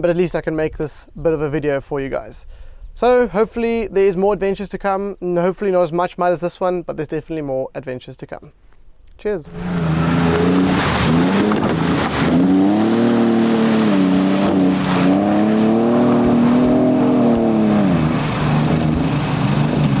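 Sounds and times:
off-road engine revving hard: 9.5s - 20.0s.

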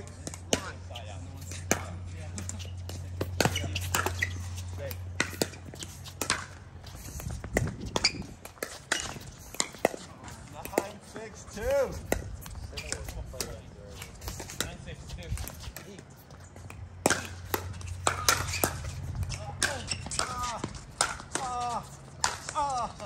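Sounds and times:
paddles hitting plastic ball: 1.5s - 16.0s, 16.6s - 22.8s.

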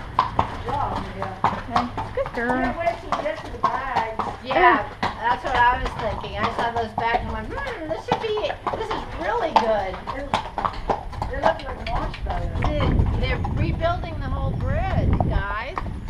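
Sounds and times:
horse hooves clip-clopping: 0.0s - 16.0s.

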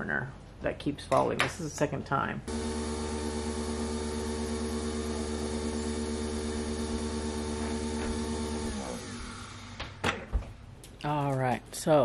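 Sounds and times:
coffee machine motor hum: 2.5s - 10.0s.

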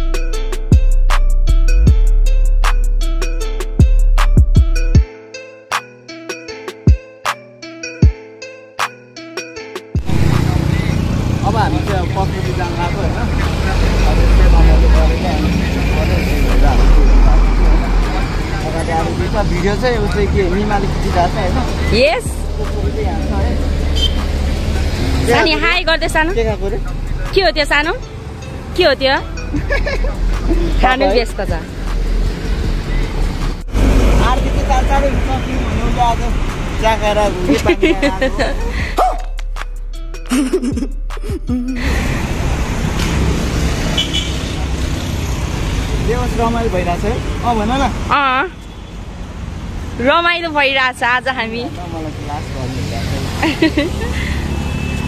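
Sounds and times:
bus engine deep rumbles: 10.0s - 39.6s, 40.2s - 48.5s, 51.0s - 55.0s
vehicles passing: 10.0s - 55.0s
people talking: 10.3s - 23.6s, 25.2s - 28.0s, 30.5s - 31.7s, 34.2s - 39.1s.

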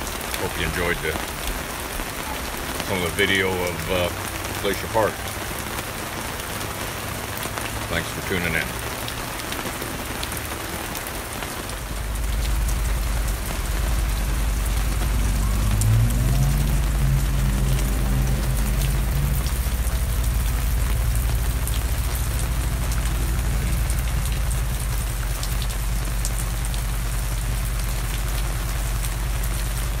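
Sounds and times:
rain on an awning: 0.0s - 30.0s
rainwater streaming off awning: 0.0s - 30.0s
low rumble: 11.7s - 30.0s.

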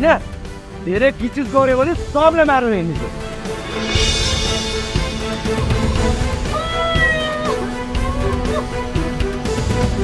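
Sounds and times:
steady low drone: 2.9s - 6.8s.

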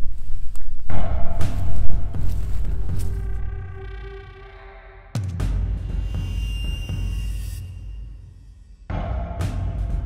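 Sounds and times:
low rumbling horror score: 0.8s - 7.9s
held eerie tone: 0.9s - 5.2s.

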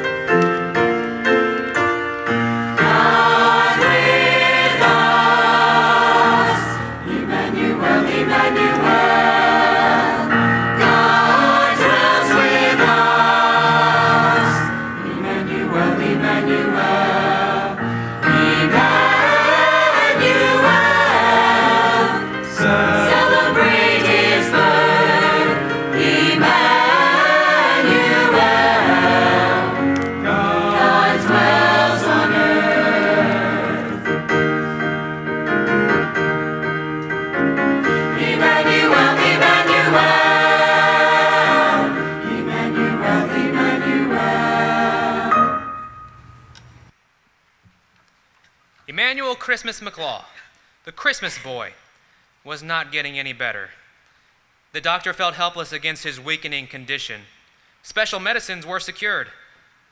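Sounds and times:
church choir singing: 2.3s - 36.8s, 37.8s - 46.0s.

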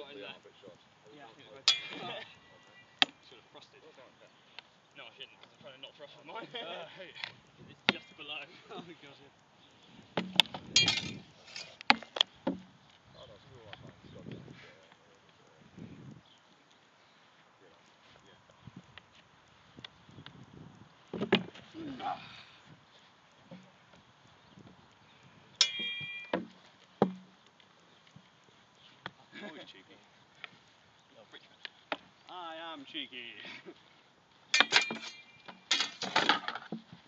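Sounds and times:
swords striking shields: 1.7s - 2.2s, 10.2s - 11.2s, 25.6s - 27.3s, 34.6s - 36.6s
blows knocking on wooden shields: 25.8s - 27.4s.

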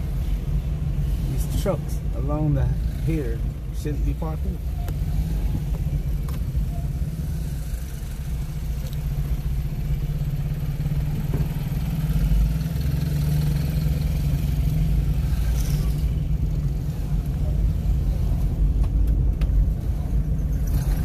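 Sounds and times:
car engine and road noise: 0.0s - 21.0s.

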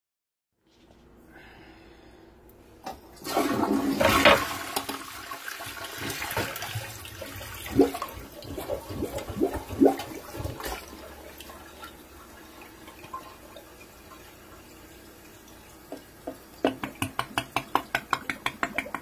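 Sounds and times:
toilet flushing: 2.8s - 19.0s
water gurgling as bowl drains: 3.2s - 13.7s.

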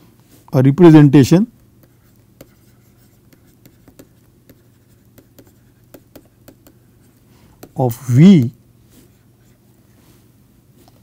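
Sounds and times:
low steady hum: 0.0s - 11.0s
stylus tapping on pen tablet: 1.6s - 8.6s.

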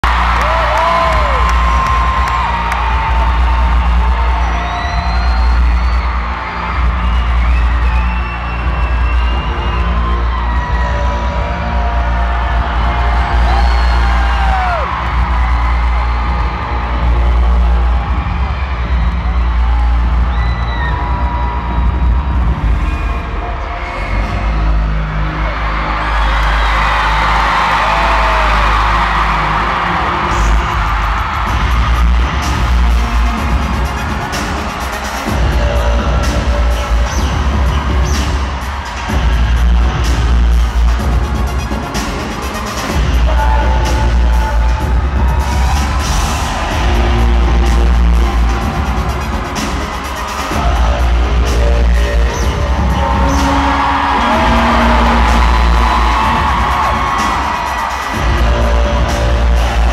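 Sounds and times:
crowd screaming and cheering: 0.0s - 59.9s
deep droning bass intro music: 42.9s - 49.6s, 50.5s - 57.0s, 58.2s - 59.9s.

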